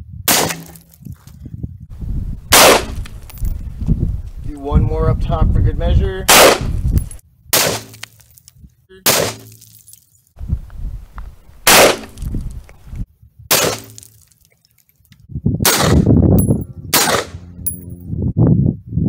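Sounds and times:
rifle shots: 0:00.3 - 0:00.8, 0:02.5 - 0:03.1, 0:06.3 - 0:06.7, 0:11.7 - 0:12.3, 0:15.7 - 0:16.1, 0:17.0 - 0:17.4.

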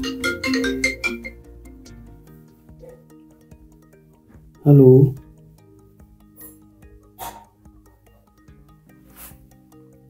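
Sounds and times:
phone ringtone melody: 0:00.0 - 0:07.1.

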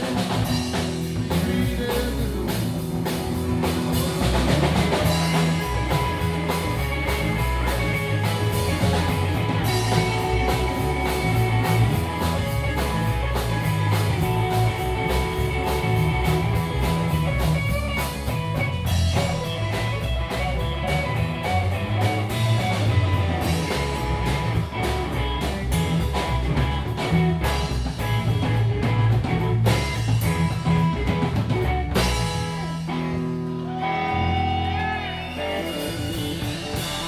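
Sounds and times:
bass guitar: 0:00.0 - 0:37.0
drum kit with cymbals: 0:00.0 - 0:37.0
electric guitar: 0:00.0 - 0:37.0.

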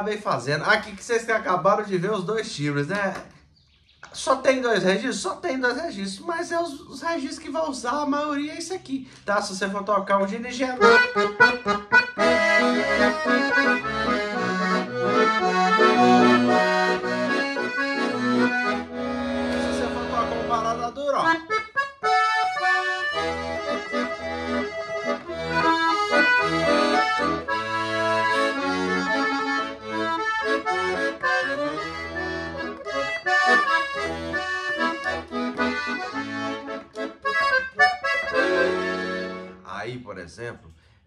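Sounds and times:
accordion playing: 0:09.2 - 0:39.7.

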